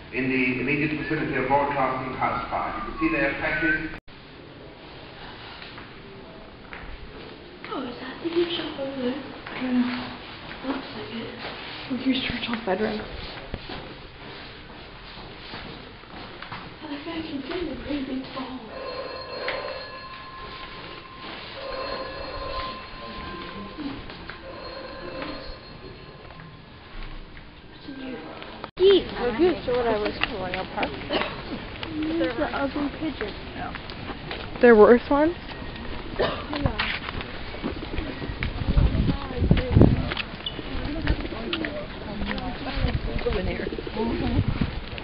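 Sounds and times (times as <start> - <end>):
telephone bell ringing: 18.6 - 26.9.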